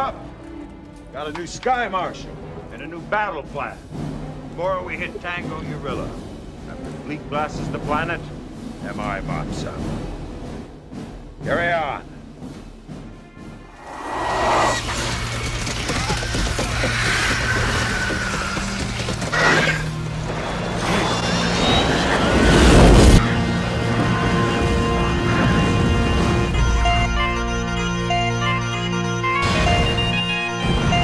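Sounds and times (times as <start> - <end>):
dramatic film score: 0.0 - 31.0
battle sound effects: 13.7 - 15.6.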